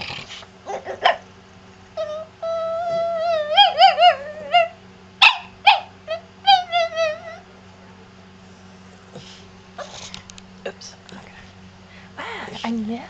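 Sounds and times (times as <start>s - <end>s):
dog whining: 0.0s - 1.2s, 1.9s - 7.5s, 9.1s - 10.2s
dog yips: 2.0s - 7.4s.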